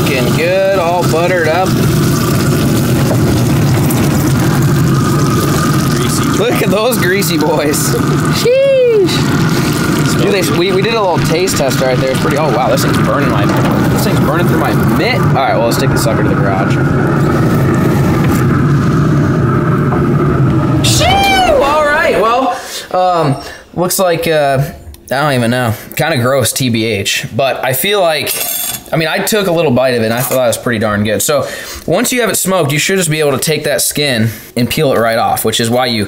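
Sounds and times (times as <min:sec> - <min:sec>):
motor humming: 0:00.0 - 0:22.6.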